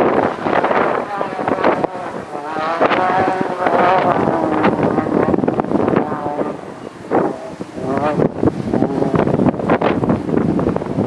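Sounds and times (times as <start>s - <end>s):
truck engine revving: 0.0s - 10.8s
wind buffeting microphone: 0.0s - 11.0s.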